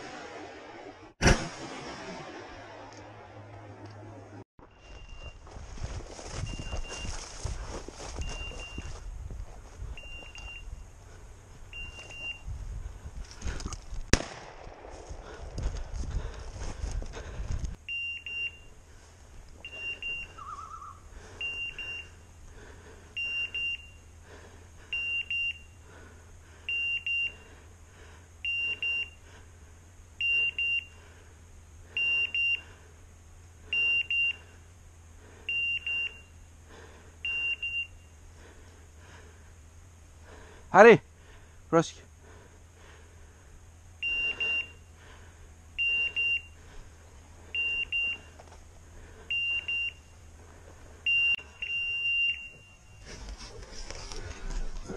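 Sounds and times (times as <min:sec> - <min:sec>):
sharp crack of brush: 0:01.2 - 0:03.2, 0:13.3 - 0:15.9
footsteps through dry brush: 0:04.6 - 0:17.8, 0:52.8 - 0:54.9
collar high double beeps: 0:44.0 - 0:44.8.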